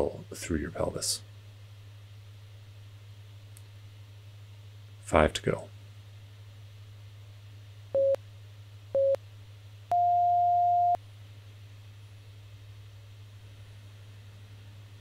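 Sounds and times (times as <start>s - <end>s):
low steady hum: 0.0s - 15.0s
interval timer beeps: 9.9s - 11.0s.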